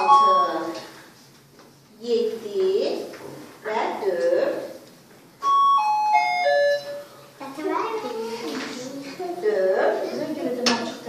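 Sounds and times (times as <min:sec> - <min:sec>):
electronic doorbell chime: 0:05.4 - 0:07.2.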